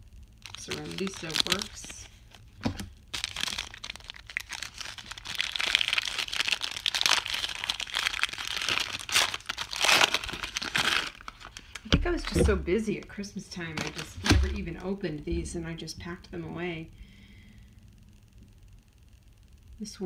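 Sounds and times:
paper wrapping crinkling: 0.4s - 14.9s.

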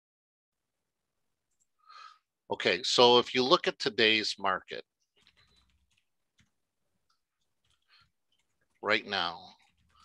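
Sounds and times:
man talking: 2.5s - 4.8s, 8.8s - 9.6s.

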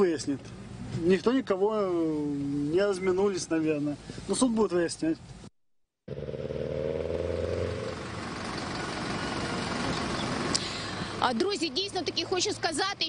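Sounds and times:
vehicle engine humming: 6.1s - 13.0s.

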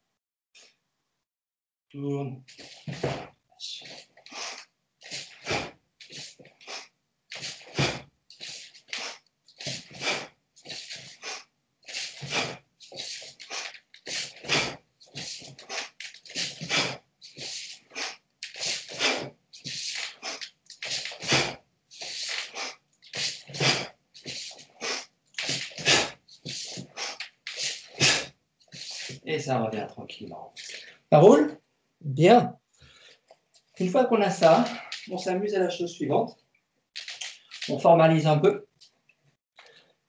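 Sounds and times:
sharp breaths: 2.5s - 29.2s, 30.6s - 31.1s, 32.7s - 33.4s, 34.6s - 35.2s.

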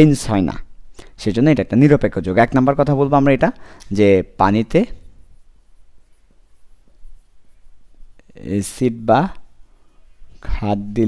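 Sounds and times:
pen scratching on paper: 4.9s - 8.8s.

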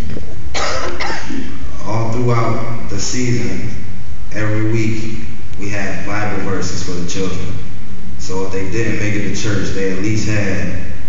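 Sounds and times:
person coughing: 0.5s - 1.7s.

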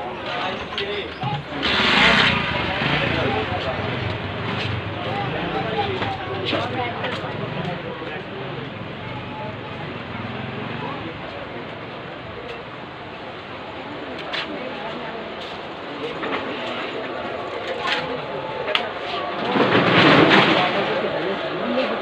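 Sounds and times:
indistinct crowd chatter: 0.0s - 22.0s.

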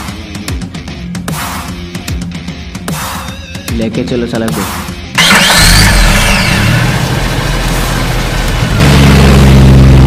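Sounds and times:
vehicle engine starting: 5.2s - 10.0s.

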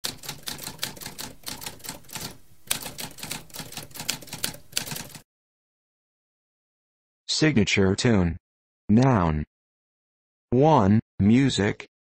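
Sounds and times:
typewriter keys striking: 0.0s - 5.2s.

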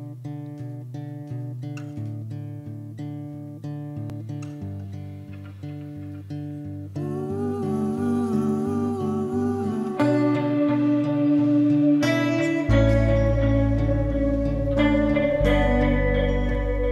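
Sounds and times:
plucked acoustic guitar: 0.0s - 16.9s
long wavering held notes: 4.2s - 16.9s.

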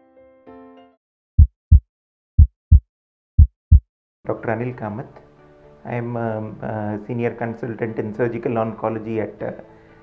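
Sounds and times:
heartbeat thump: 1.4s - 3.9s.

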